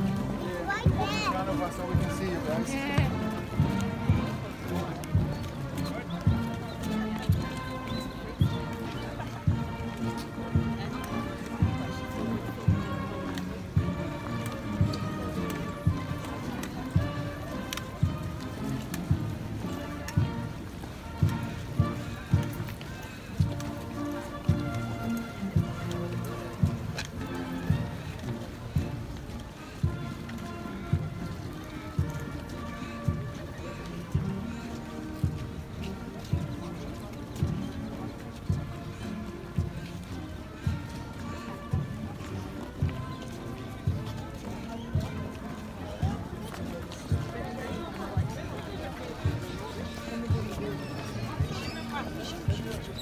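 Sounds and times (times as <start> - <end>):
crowd chatter: 0.0 - 53.0
marching band music: 0.0 - 53.0.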